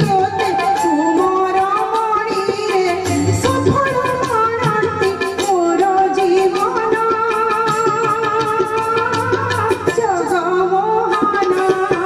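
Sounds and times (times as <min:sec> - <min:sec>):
tabla strokes: 0:00.0 - 0:12.0.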